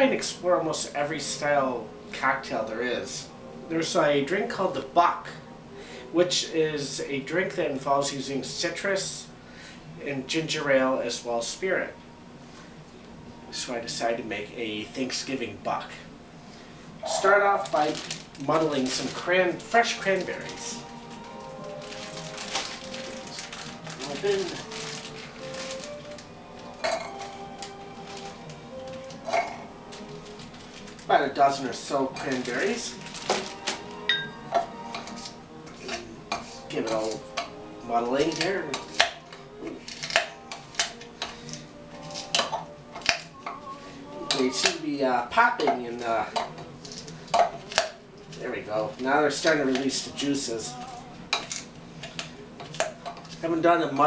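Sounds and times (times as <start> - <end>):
background music: 0.0 - 54.0.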